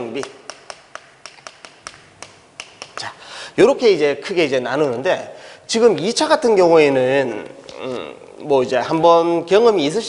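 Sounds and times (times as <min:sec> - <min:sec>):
chalk tapping on chalkboard: 0:00.2 - 0:03.1.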